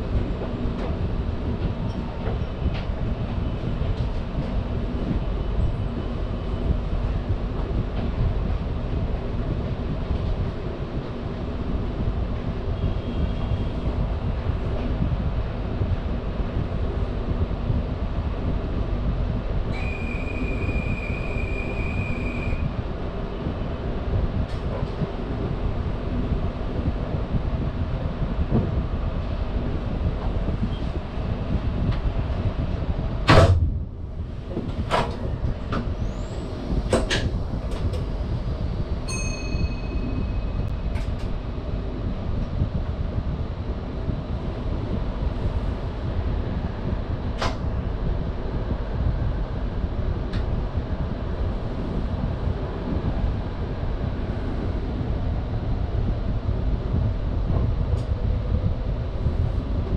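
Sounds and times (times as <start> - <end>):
train equipment low rumble: 0.0 - 59.9
ringing chime: 39.1 - 40.6
steady high tone: 39.1 - 40.7.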